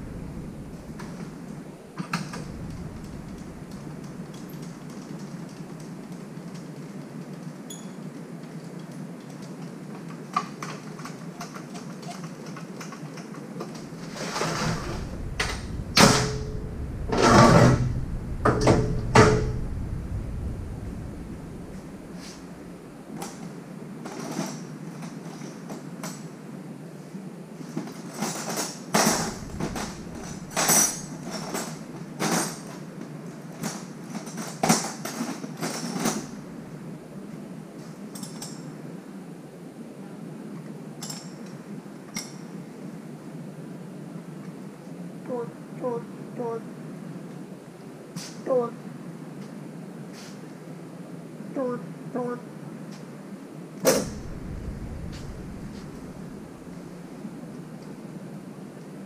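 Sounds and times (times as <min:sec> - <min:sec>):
metal tools clanking: 0:28.2 - 0:32.8.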